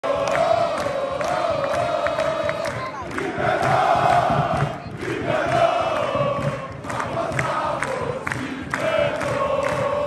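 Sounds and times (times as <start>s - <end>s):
crowd chanting: 0.0s - 10.0s
rhythmic hand-clapping: 0.0s - 10.0s.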